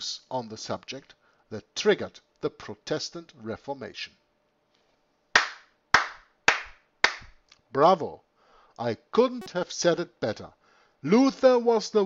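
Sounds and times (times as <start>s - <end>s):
person clapping hands: 5.4s - 7.4s.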